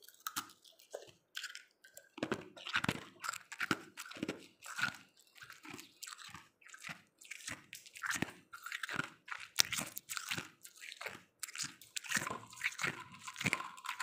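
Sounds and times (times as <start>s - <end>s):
ice being chewed: 0.0s - 14.0s.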